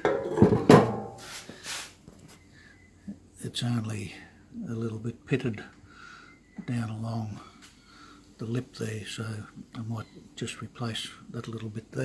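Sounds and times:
metal knocking and scraping on metal: 0.0 - 1.2.

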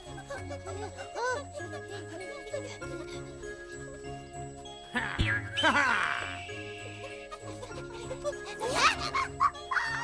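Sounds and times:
bell-like tinkling tones: 5.6 - 10.0.

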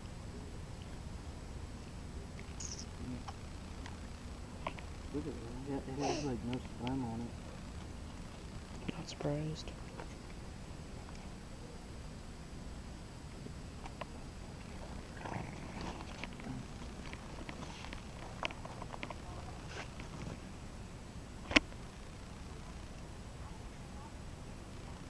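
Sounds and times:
low steady rumble: 0.0 - 25.0.

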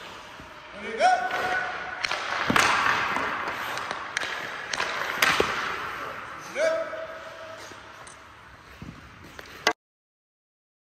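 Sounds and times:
hockey pucks clacking off sticks: 1.2 - 6.4, 8.7 - 9.8.

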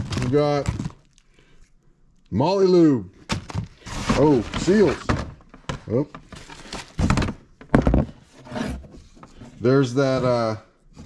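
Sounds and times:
cardboard rustling: 3.2 - 10.5
cardboard scrape: 3.8 - 5.1, 8.0 - 10.4.

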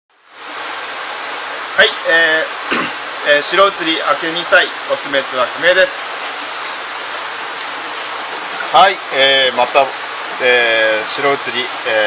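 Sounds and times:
running water rushing: 0.1 - 12.0.

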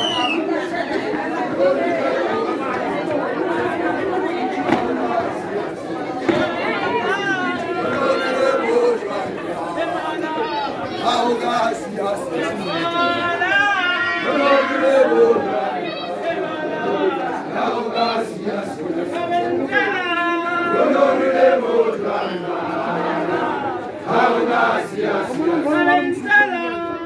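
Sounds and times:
crowd chatter: 0.0 - 27.0
people calling out: 0.0 - 27.0.

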